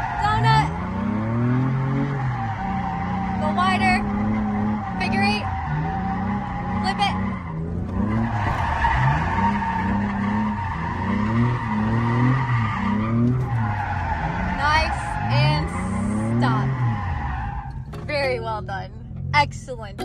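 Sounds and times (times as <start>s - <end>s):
car engine revving: 0.0s - 20.0s
tyres squealing on pavement: 1.8s - 18.6s.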